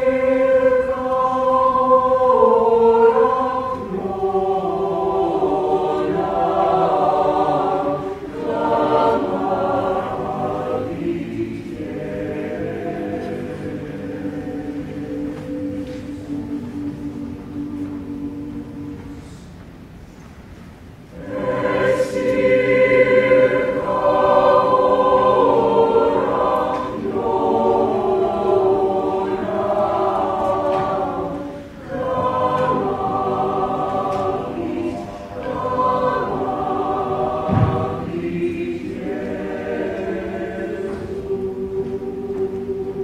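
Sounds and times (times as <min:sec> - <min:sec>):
choir singing sustained chords: 0:00.0 - 0:43.0
short low thump: 0:37.5 - 0:38.0.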